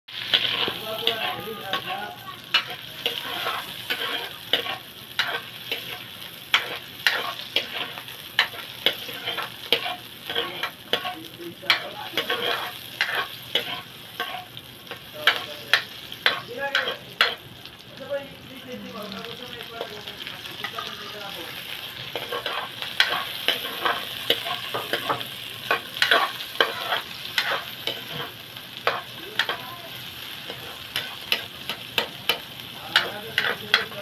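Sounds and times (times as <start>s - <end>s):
onion sizzling in hot oil: 0.1s - 34.0s
metal ladle scraping wok: 0.2s - 14.5s, 22.1s - 29.6s.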